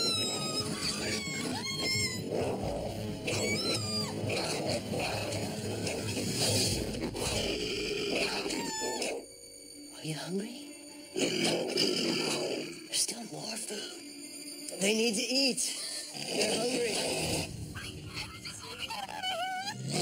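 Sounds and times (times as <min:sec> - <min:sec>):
high-pitched creature squeals: 0:00.0 - 0:09.3
dense background music: 0:00.0 - 0:19.2.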